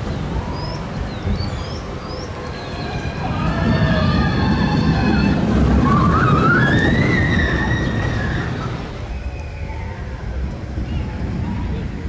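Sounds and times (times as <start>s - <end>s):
roller coaster rumbling on track: 0.0s - 12.0s.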